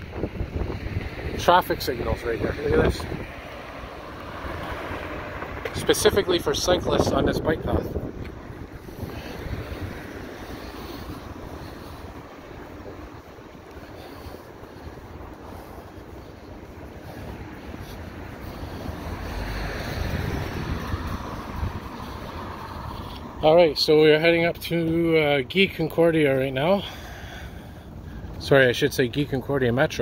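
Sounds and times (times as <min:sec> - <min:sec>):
wind rumbling on microphone: 0:00.0 - 0:26.0
city street noise: 0:00.0 - 0:30.0.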